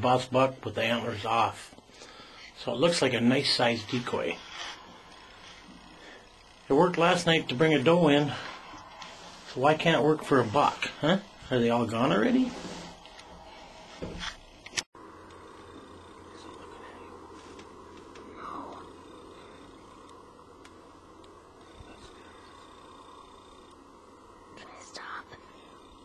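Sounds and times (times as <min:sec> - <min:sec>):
faint whispers or breaths: 0:01.8 - 0:02.6
low background hiss: 0:15.1 - 0:26.0.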